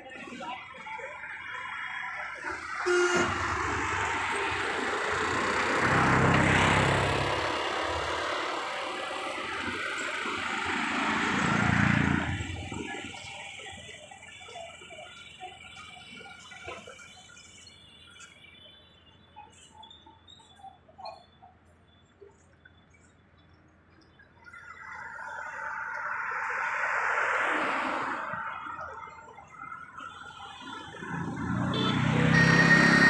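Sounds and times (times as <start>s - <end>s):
vehicles passing: 0.0s - 33.0s.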